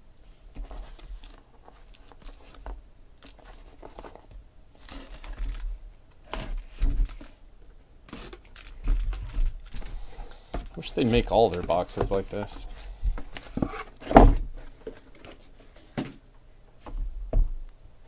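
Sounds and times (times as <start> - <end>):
cardboard crackling and scraping: 0.6 - 7.4, 8.1 - 16.2
knife slitting packing tape: 8.1 - 9.4
tape tearing: 8.1 - 9.8.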